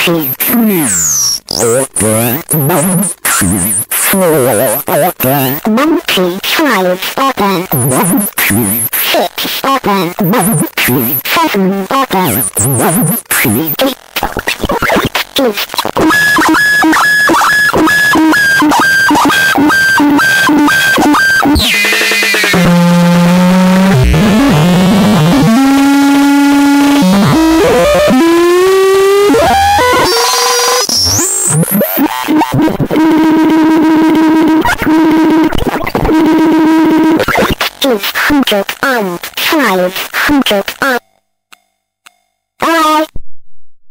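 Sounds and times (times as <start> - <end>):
stuttering electronic glitch tones: 0.4 - 4.8, 12.2 - 37.8.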